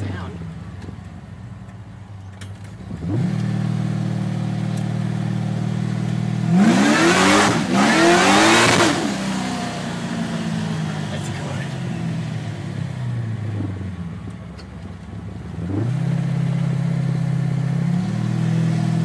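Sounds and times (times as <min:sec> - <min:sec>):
car engine accelerating: 0:00.0 - 0:19.0.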